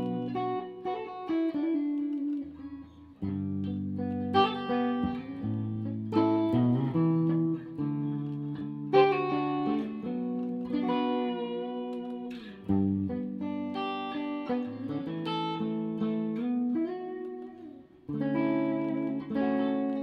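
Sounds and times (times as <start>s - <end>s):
clean electric guitar chords: 0.0s - 20.0s.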